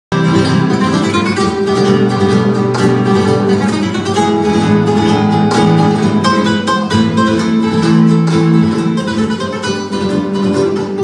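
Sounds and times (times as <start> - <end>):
flamenco guitars playing: 0.1 - 11.0.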